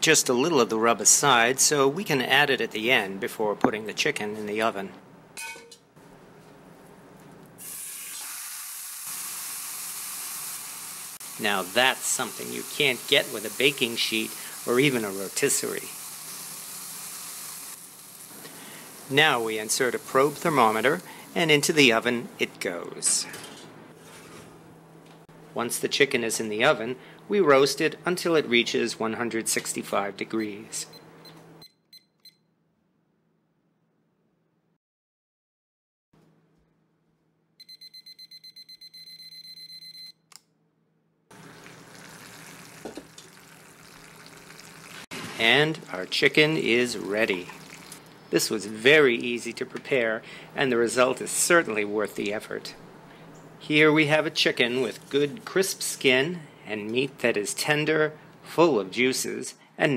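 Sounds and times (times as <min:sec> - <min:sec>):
chicken sizzling in pot: 0:07.6 - 0:21.8, 0:41.3 - 0:48.2
thermometer alert beeping: 0:37.6 - 0:40.2.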